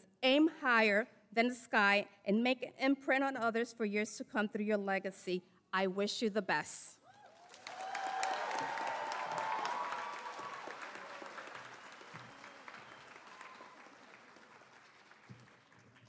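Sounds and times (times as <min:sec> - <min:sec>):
audience cheering: 0:07.3 - 0:15.2
audience applauding: 0:07.3 - 0:16.0.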